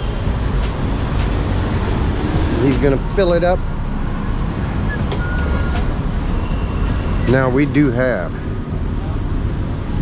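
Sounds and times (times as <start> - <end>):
low rumble of street traffic: 0.0 - 10.0
faint short beep: 4.9 - 5.8.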